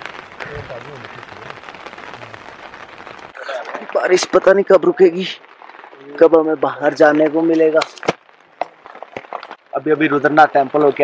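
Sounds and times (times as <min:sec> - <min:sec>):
heavy rain on a tent: 0:00.0 - 0:11.0.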